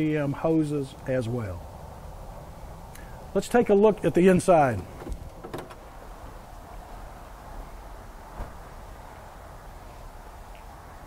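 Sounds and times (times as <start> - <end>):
dull thump of car body: 4.8 - 5.9, 8.3 - 8.8.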